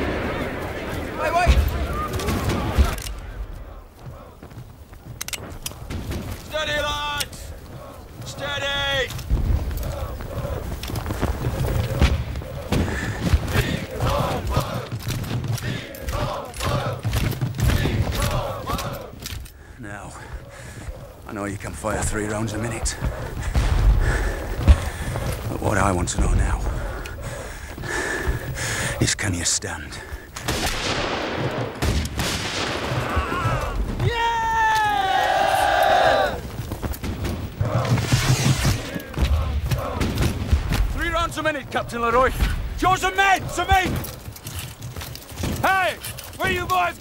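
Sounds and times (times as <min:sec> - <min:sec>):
massed musket fire: 0:00.0 - 0:03.8, 0:30.4 - 0:35.0, 0:35.6 - 0:47.0
musket fire: 0:00.0 - 0:03.8, 0:30.4 - 0:35.0
men shouting: 0:06.4 - 0:15.0, 0:15.6 - 0:19.2, 0:33.0 - 0:36.5, 0:41.0 - 0:44.2.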